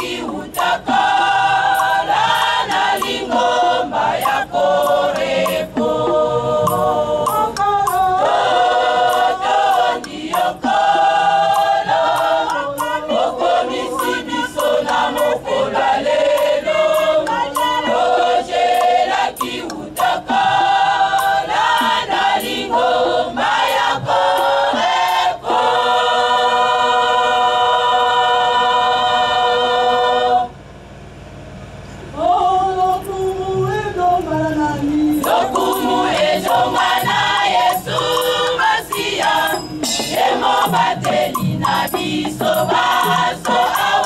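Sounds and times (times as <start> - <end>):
women's choir singing: 0.0 - 30.6, 32.2 - 44.0.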